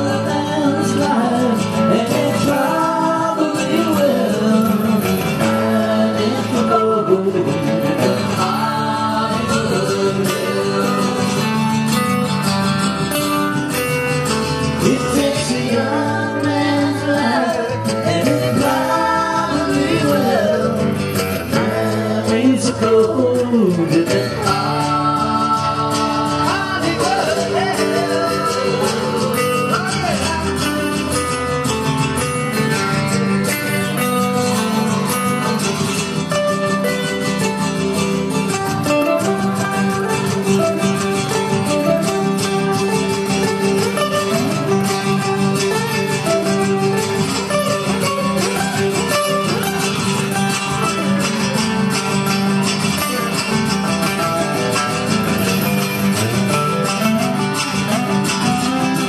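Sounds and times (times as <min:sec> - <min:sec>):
acoustic guitars playing country-rock: 0:00.0 - 0:59.0.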